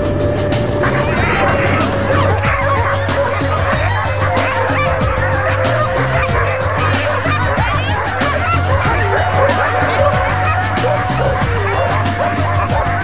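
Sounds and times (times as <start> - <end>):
steady low hum: 0.0 - 3.9
dogs barking yelping and howling: 0.0 - 13.0.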